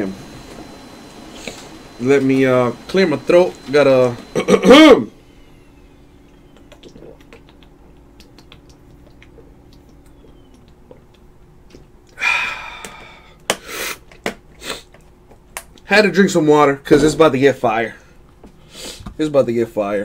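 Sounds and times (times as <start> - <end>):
room hum: 0.0 - 20.0
man exhaling breathily: 12.2 - 14.0.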